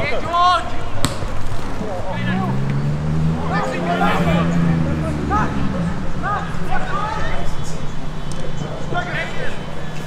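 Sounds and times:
players shouting: 0.0 - 10.0
football kick thud: 1.0 - 1.4.

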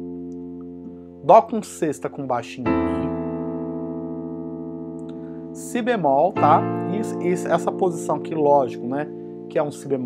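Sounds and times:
digital keyboard chord ringing: 0.0 - 10.0.

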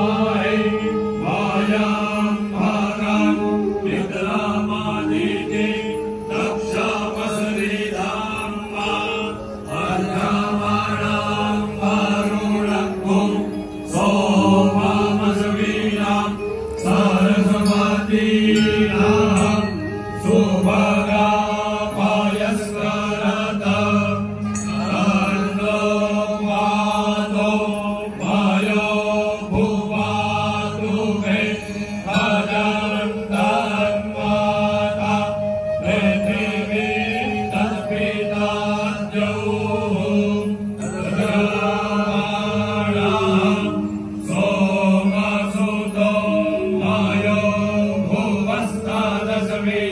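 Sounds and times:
men chanting in unison: 0.0 - 49.9.

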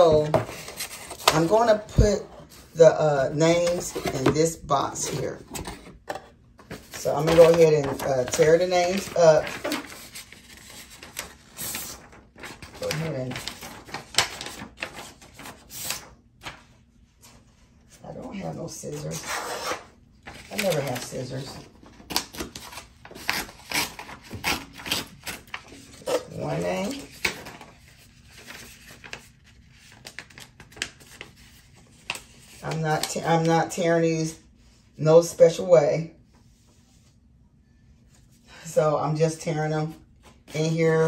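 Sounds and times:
paper rustling: 0.0 - 33.5
paper tearing: 7.0 - 16.6, 19.1 - 29.4.

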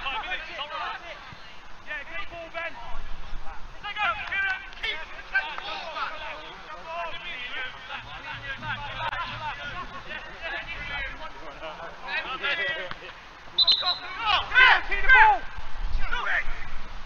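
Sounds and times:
footballers shouting and calling: 0.0 - 17.0.

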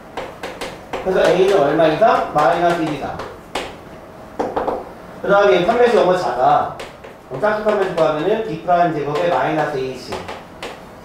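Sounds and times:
man talking: 1.0 - 3.2, 5.2 - 10.3.

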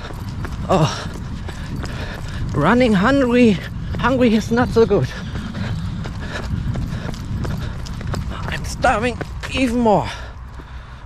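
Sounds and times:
jogging footsteps on pavement: 0.0 - 11.0
steady low rumble: 0.0 - 11.0.

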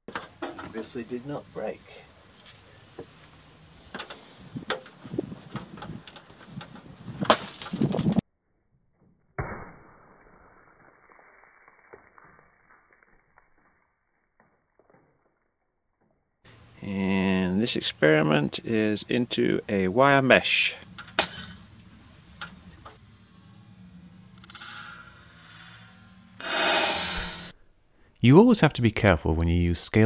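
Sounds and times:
grains spraying and scattering: 9.4 - 15.4.

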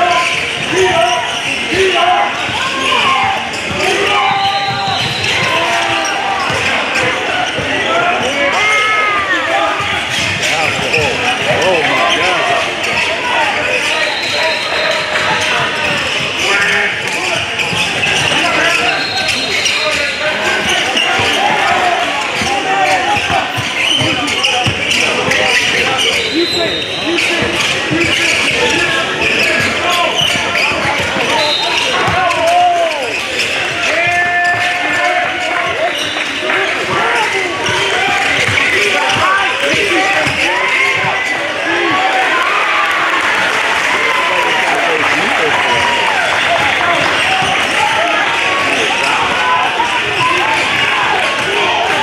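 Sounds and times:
people calling out: 0.0 - 52.0.

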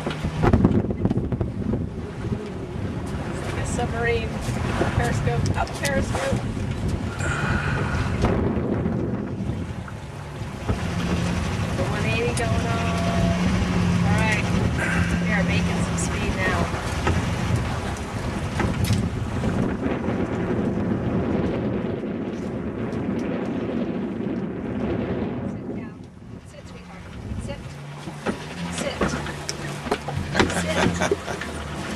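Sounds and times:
wind buffeting microphone: 0.0 - 31.9.

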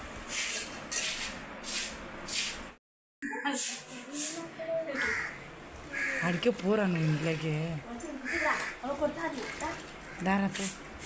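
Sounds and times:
crow cawing: 4.9 - 6.6, 8.2 - 8.9, 10.0 - 10.4.

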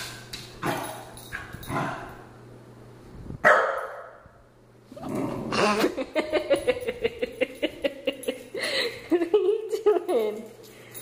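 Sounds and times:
dog barking: 3.4 - 4.2.

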